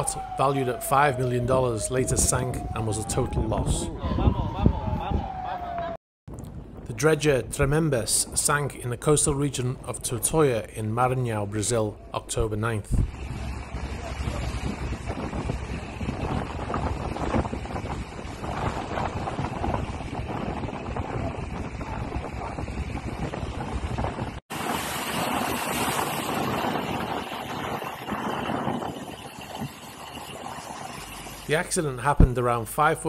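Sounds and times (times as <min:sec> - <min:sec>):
wind buffeting microphone: 0:00.0 - 0:32.6
seawater rushing and breaking: 0:12.9 - 0:32.3.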